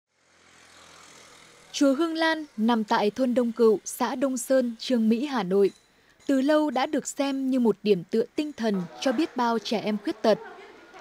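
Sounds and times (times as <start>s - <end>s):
distant traffic hum: 0.1s - 11.0s.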